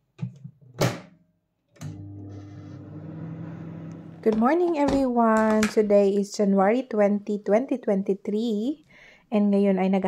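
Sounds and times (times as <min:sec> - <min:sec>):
microwave electrical hum: 0:01.8 - 0:04.4.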